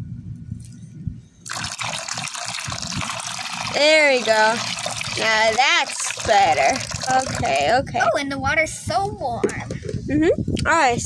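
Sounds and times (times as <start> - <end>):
water pouring into plastic pool: 1.5 - 7.8.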